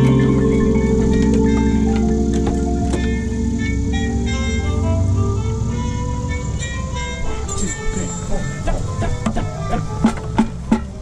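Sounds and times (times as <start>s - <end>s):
drum and mallet percussion: 0.0s - 5.5s, 7.5s - 11.0s
held brass chord: 0.0s - 10.4s.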